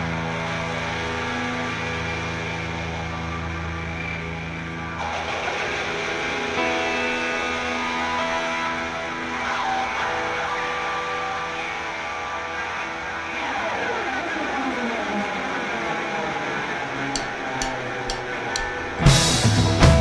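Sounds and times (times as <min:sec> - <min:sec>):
electric guitar sustained notes: 0:00.0 - 0:20.0
drumstick count-in taps: 0:17.2 - 0:19.1.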